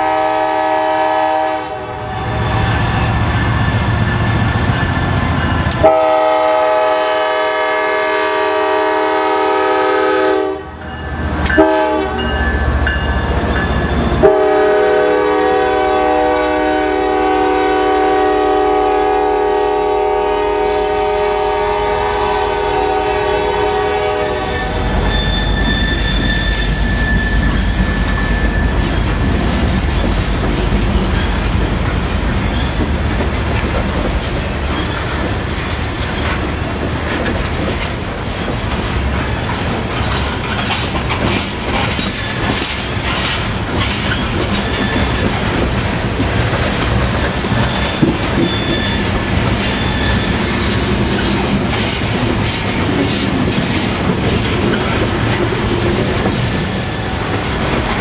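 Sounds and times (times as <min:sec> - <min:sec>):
locomotive air horn: 0:00.0 - 0:03.2, 0:05.8 - 0:10.8, 0:11.5 - 0:12.4, 0:14.2 - 0:28.1
freight cars rumbling and clacking: 0:10.9 - 0:14.4, 0:24.6 - 0:58.0.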